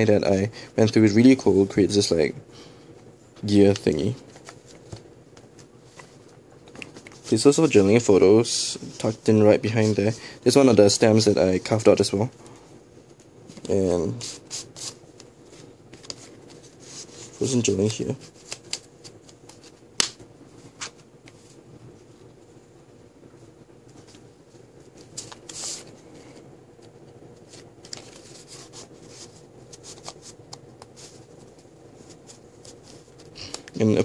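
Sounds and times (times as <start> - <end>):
paper rustling and scraping: 13.5 - 19.8, 24.9 - 26.4, 27.4 - 34.0.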